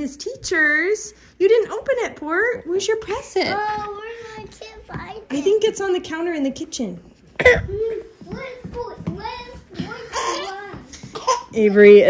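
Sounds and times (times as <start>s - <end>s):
child coughing: 7.4s - 8.0s, 9.8s - 11.7s
child vocal sounds: 7.4s - 11.5s.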